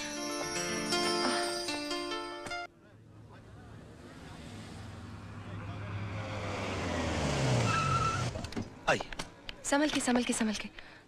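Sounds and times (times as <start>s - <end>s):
car engine and tyre noise: 2.7s - 9.8s
brakes squealing: 3.0s - 9.0s.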